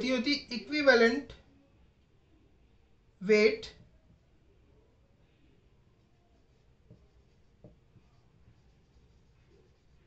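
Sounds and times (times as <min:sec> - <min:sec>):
marker pen writing on whiteboard: 0:05.3 - 0:10.0.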